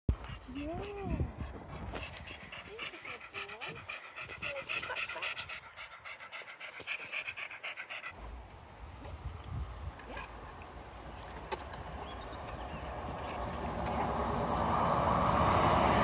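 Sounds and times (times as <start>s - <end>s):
dog panting rapidly: 0.1s - 8.2s.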